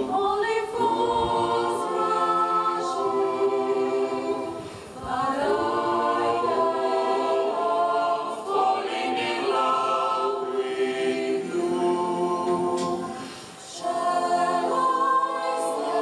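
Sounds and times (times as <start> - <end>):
mixed choir singing a cappella: 0.0 - 16.0.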